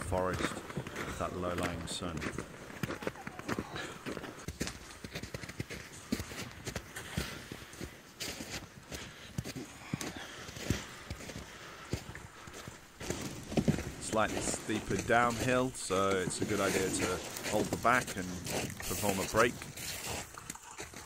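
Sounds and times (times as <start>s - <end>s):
toboggan sliding on snow: 0.0s - 8.8s, 9.4s - 21.0s
footsteps on snow: 0.0s - 21.0s.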